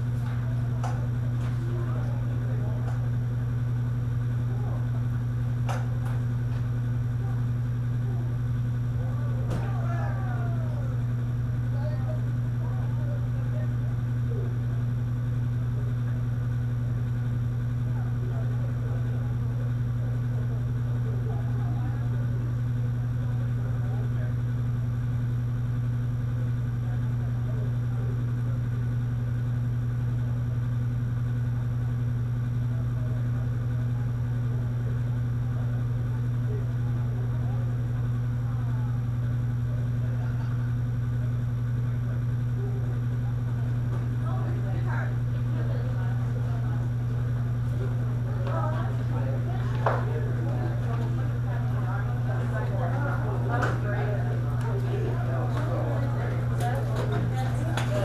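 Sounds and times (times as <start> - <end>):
faint distant voices: 0.0 - 25.3, 30.0 - 58.0
loud steady low hum: 0.0 - 58.0.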